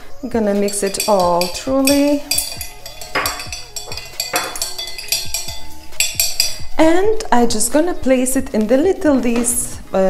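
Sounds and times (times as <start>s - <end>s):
spoon clinking against glass: 0.5s - 6.8s.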